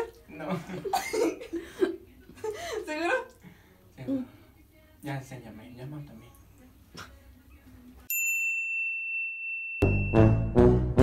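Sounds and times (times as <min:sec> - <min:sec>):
high-pitched ringing tone: 0:08.1 - 0:10.4.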